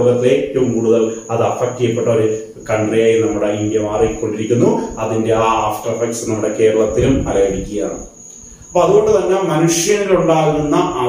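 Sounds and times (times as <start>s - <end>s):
high-pitched whine: 0.0s - 11.0s
man speaking: 0.0s - 11.0s.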